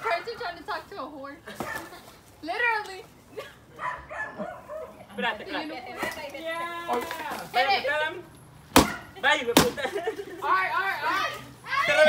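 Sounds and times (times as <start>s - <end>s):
pinata being whacked: 8.7s - 9.8s
people shouting: 11.0s - 12.0s.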